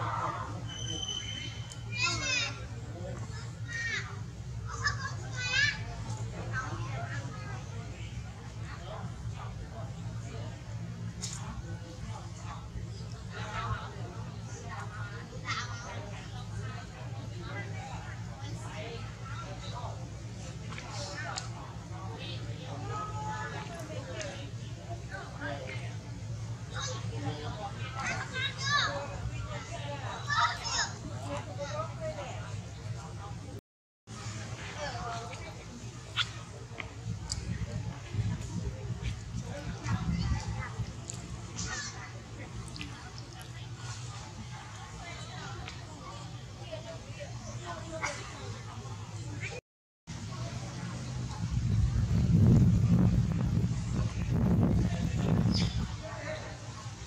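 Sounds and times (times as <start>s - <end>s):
steady low hum: 0.0s - 57.0s.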